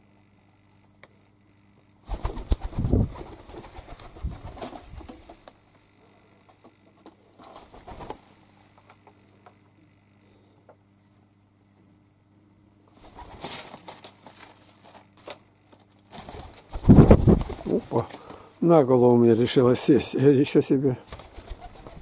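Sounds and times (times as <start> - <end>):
pigeon wings flapping: 2.0 - 5.5, 7.4 - 8.2, 13.0 - 15.0, 16.1 - 18.3, 21.0 - 22.0.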